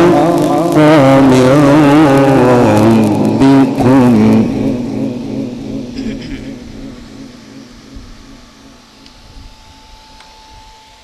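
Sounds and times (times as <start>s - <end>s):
man chanting recitation: 0.0s - 8.0s.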